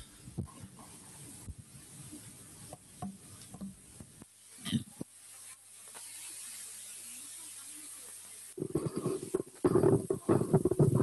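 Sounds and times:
microphone hiss: 0:00.0 - 0:11.0
microphone handling noise: 0:08.6 - 0:11.0.

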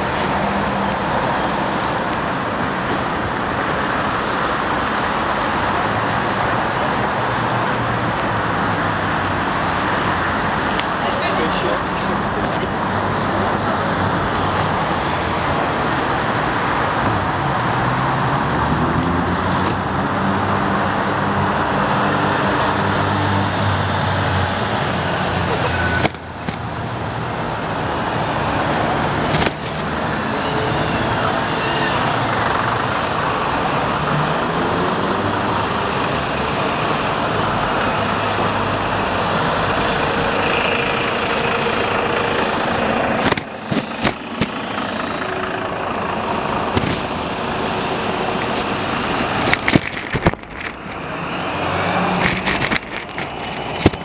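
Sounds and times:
car engines passing: 0:00.0 - 0:54.0
road noise: 0:00.0 - 0:54.0.

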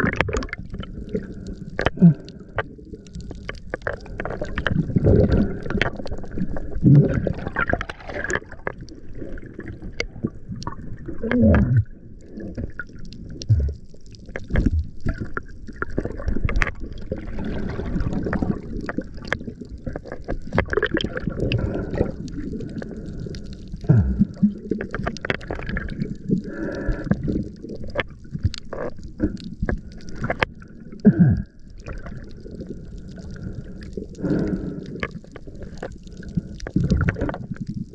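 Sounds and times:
water gurgling underwater: 0:00.0 - 0:37.9.

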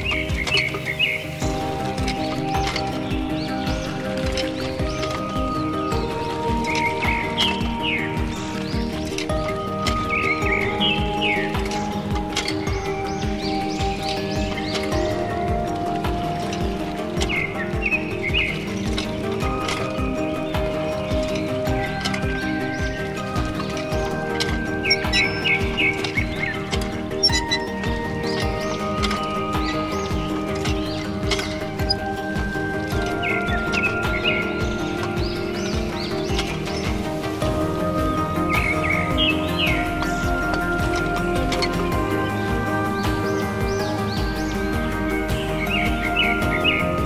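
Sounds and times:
music with steady beat: 0:00.0 - 0:47.0.

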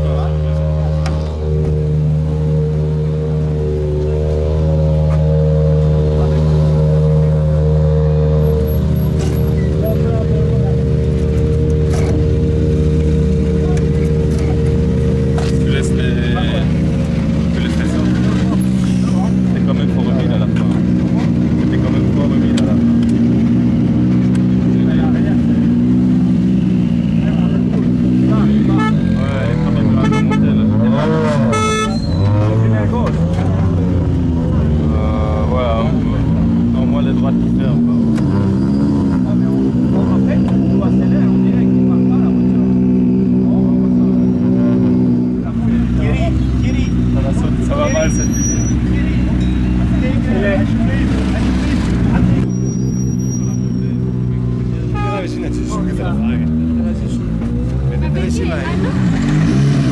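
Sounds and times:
people talking: 0:00.0 - 0:01.4, 0:09.2 - 0:11.3, 0:13.3 - 0:23.2, 0:24.5 - 0:25.8, 0:27.1 - 0:44.3, 0:45.4 - 0:59.5
car engine idling and revving: 0:00.0 - 0:59.9.

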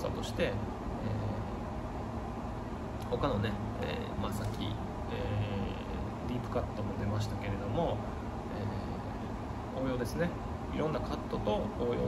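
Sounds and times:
faint hiss: 0:00.0 - 0:12.0
low outdoor rumble: 0:00.0 - 0:12.0.

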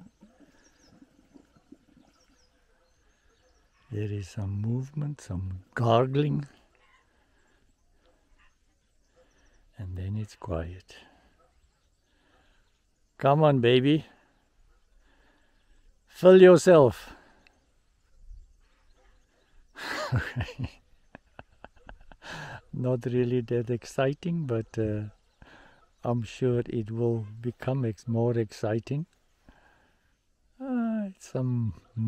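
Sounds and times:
distant birds chirping: 0:00.0 - 0:32.0.

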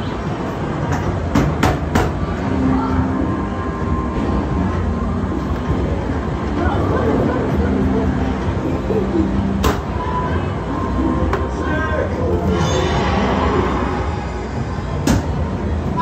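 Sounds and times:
arcade machines humming: 0:00.0 - 0:16.0
crowd chatter: 0:00.0 - 0:16.0.

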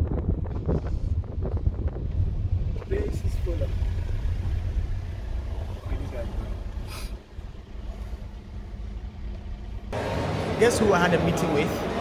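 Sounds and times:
car engine rumbling inside cabin: 0:00.0 - 0:10.6.

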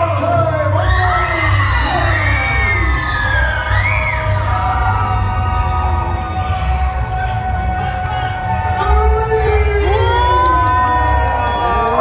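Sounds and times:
dance music with pulsing bass: 0:00.0 - 0:12.0.

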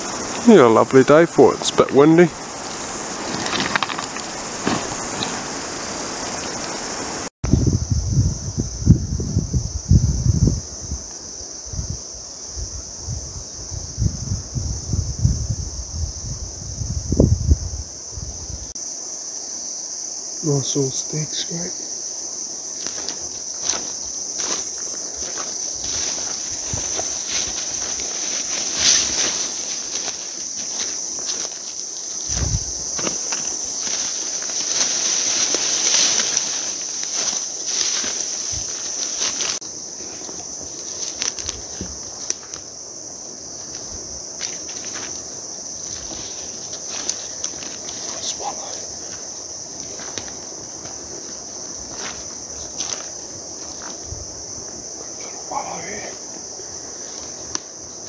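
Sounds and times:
brushing past undergrowth: 0:00.0 - 0:07.3, 0:20.8 - 0:58.0
high insect chorus: 0:00.0 - 0:58.0
footsteps crunching leaf litter: 0:01.6 - 0:05.7, 0:22.6 - 0:42.7, 0:43.5 - 0:54.0.

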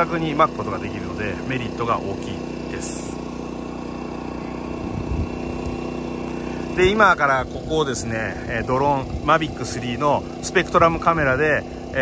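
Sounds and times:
drone rotors humming: 0:00.0 - 0:12.0.

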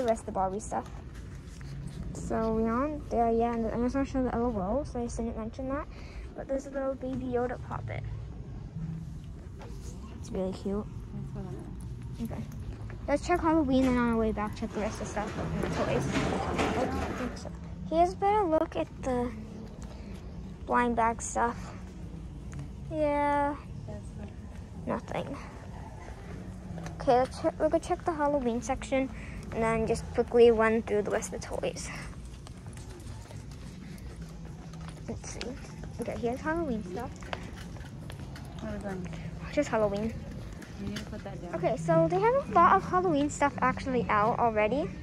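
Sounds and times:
low background hum: 0:00.0 - 0:45.0
footsteps on tiled floor: 0:24.2 - 0:41.6.

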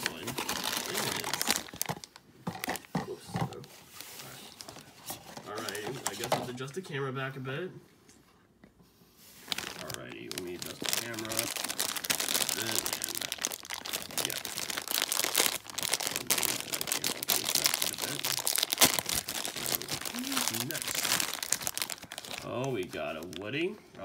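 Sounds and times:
cardboard box and foil crinkling: 0:00.0 - 0:06.6, 0:09.4 - 0:23.7.

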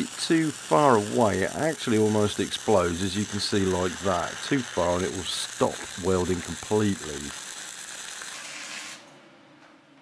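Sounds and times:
faint hiss: 0:00.0 - 0:09.0
welding arc crackling and hissing: 0:00.0 - 0:09.1.

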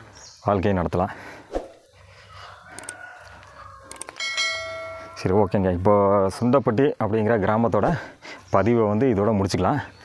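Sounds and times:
faint rooster crowing: 0:02.1 - 0:06.0.

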